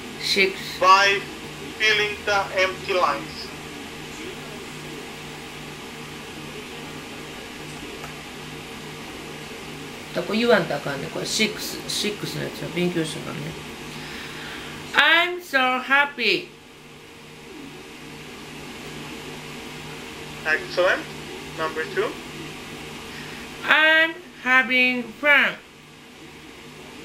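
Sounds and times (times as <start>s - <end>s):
low hum: 0.0s - 27.0s
steady background hiss: 0.0s - 27.0s.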